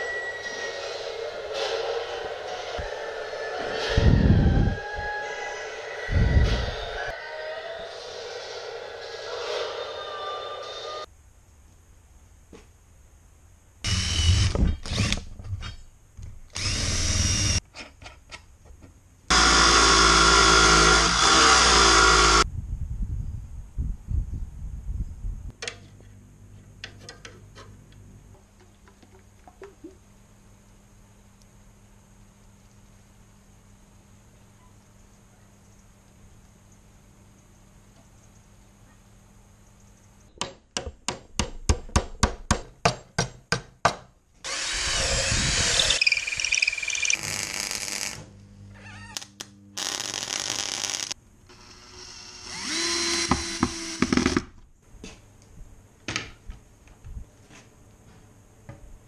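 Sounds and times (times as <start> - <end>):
cordless drill whining: 16.6 - 17.6, 44.4 - 47.2, 51.5 - 54.4
power tool rising in pitch: 16.6 - 17.6, 44.5 - 47.2, 51.5 - 54.2
welding crackle: 46.6 - 48.2, 49.2 - 51.2.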